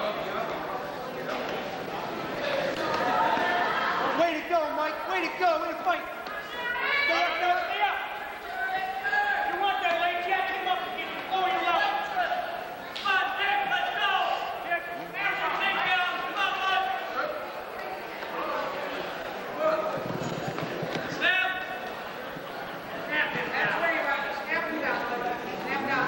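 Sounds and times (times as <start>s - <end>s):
men shouting in a gymnasium: 2.4s - 17.7s.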